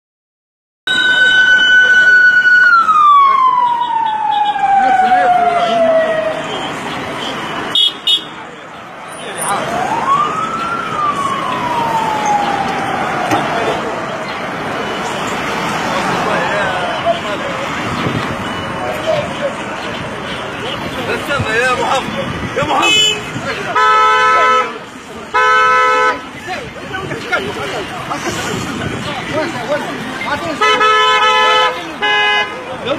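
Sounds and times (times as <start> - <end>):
siren winding down: 0.9 - 6.4, 9.7 - 13.9
faint voices: 1.0 - 32.9
vehicle horn blasts: 7.7 - 8.3, 22.8 - 24.8, 30.6 - 32.6.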